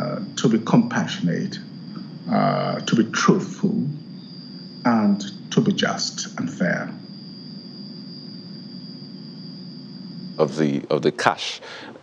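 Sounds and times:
high-pitched whine: 0:00.0 - 0:12.0
low hum: 0:00.0 - 0:12.0.

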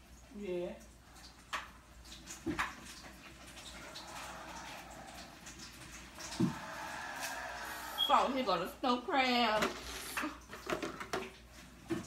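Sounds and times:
faint steady background noise: 0:00.0 - 0:12.0.

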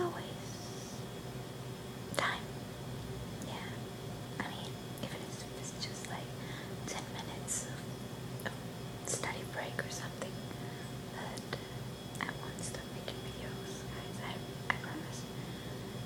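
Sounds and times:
woman whispering: 0:00.0 - 0:01.0, 0:02.2 - 0:02.5, 0:04.4 - 0:07.8, 0:08.5 - 0:10.4, 0:11.1 - 0:11.6, 0:12.2 - 0:15.3.

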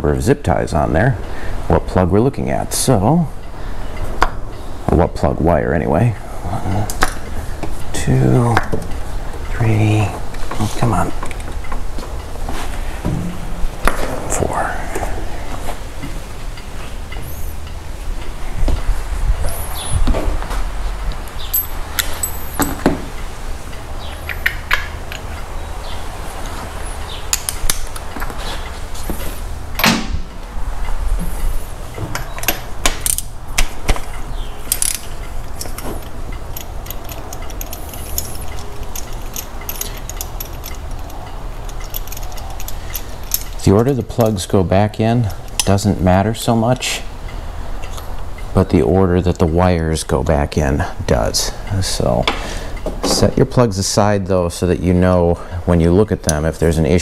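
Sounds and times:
steady low hum: 0:00.0 - 0:57.0
metal hand tools clinking: 0:21.5 - 0:22.9, 0:34.7 - 0:44.5
ratchet clicking: 0:34.7 - 0:44.5.

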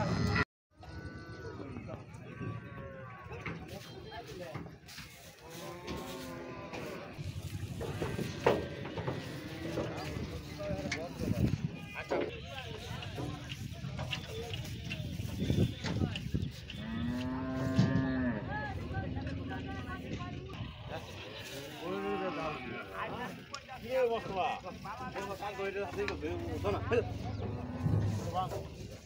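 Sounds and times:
cow mooing: 0:05.5 - 0:10.6, 0:16.8 - 0:19.9.

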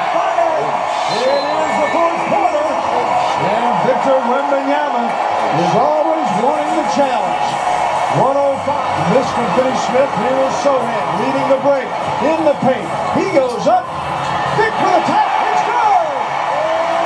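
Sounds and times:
man talking: 0:00.0 - 0:07.4, 0:08.1 - 0:13.8.

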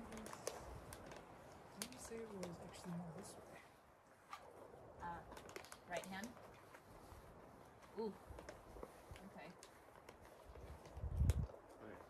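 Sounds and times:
faint clicks and taps: 0:00.0 - 0:03.3, 0:07.8 - 0:12.0.

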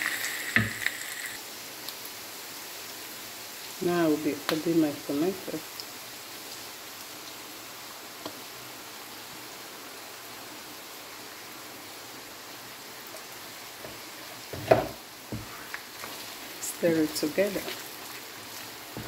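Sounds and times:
spaghetti sizzling in a frying pan: 0:00.0 - 0:19.0.

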